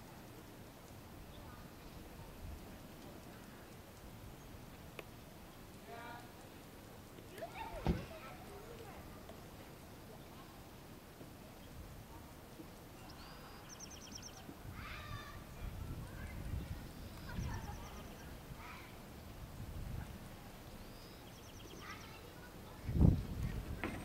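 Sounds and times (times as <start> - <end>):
sudden low thump: 7.8 - 8.2
songbird trilling: 13.0 - 14.5, 16.8 - 18.3, 20.6 - 22.3.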